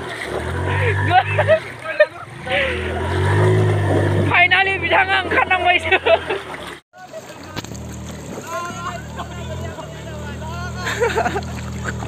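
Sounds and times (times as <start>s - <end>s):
scooter engine revving: 0.0s - 6.8s, 7.6s - 12.0s
men shouting: 8.4s - 11.2s.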